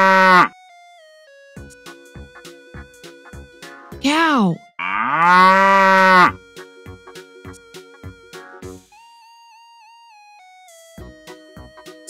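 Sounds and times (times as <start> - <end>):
cow mooing: 0.0 - 0.5, 4.8 - 6.4
light background music: 0.0 - 12.0.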